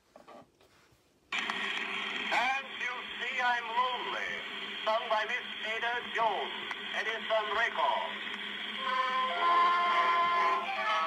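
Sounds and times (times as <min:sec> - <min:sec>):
old record surface noise: 0:00.0 - 0:11.0
person speaking announcement: 0:02.3 - 0:08.3.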